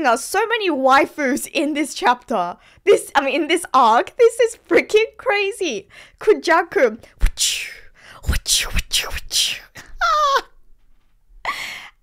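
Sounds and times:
woman's high-pitched exclamation: 10.0s - 10.5s.

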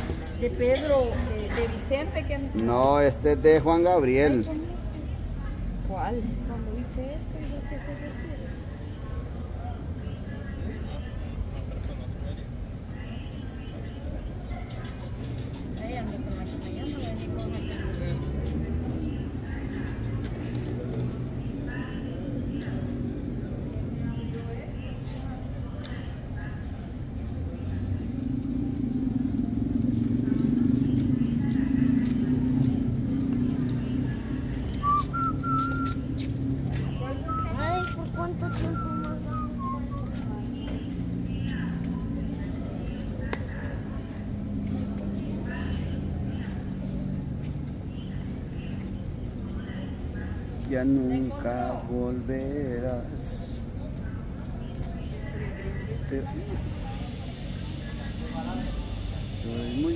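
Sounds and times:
indistinct voices: 0.0s - 59.9s
vehicle engine rumble: 0.0s - 59.9s
short wavering whistle: 34.8s - 36.0s.

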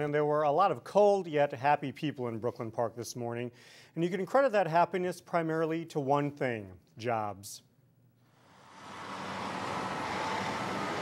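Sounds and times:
dump truck diesel engine running: 8.7s - 11.0s.

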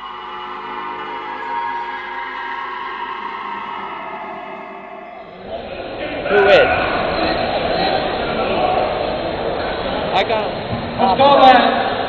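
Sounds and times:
ambient music of held tones: 0.0s - 8.9s
crowd in large hall: 0.0s - 12.0s.

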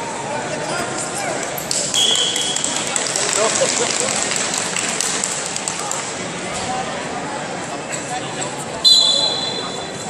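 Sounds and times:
crowd chatter: 0.0s - 10.0s
referee's whistle: 2.0s - 2.6s, 8.8s - 10.0s.

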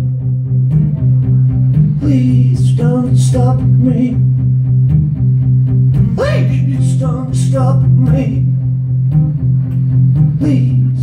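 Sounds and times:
acoustic guitar riff: 0.0s - 11.0s.

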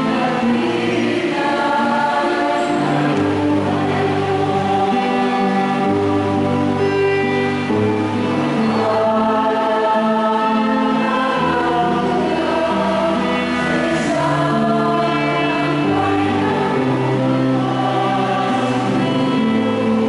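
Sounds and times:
choir singing a slow hymn: 0.0s - 20.0s
instrumental accompaniment: 0.0s - 20.0s.

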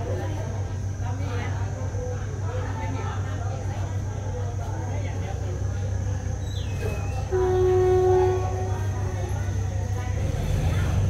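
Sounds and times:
train coaches rumbling past: 0.0s - 11.0s
train horn: 7.2s - 9.6s.

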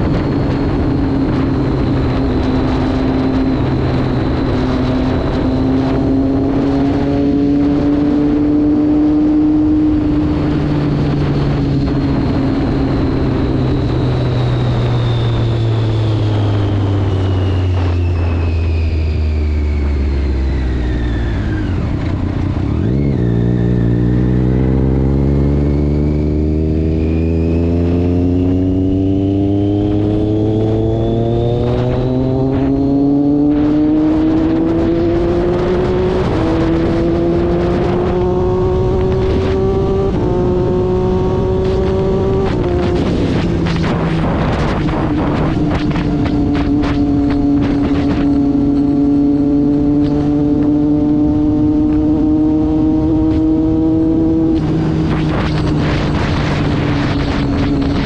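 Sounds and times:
motorcycle engine: 0.0s - 58.0s
wind and road rush: 0.0s - 58.0s.

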